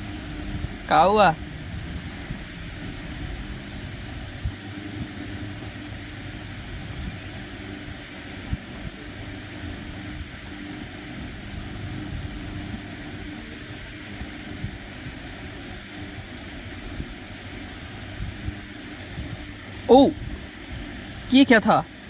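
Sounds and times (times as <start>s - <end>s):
low mechanical hum: 0.0s - 22.0s.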